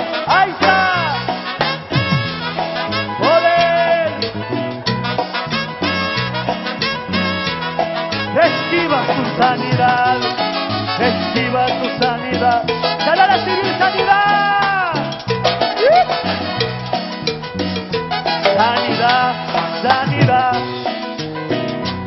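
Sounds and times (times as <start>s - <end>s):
live band playing latin music: 0.0s - 22.0s.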